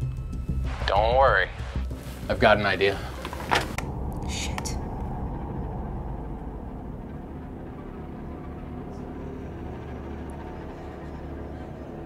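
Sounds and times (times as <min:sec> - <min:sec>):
low rumbling drone: 0:00.0 - 0:12.0.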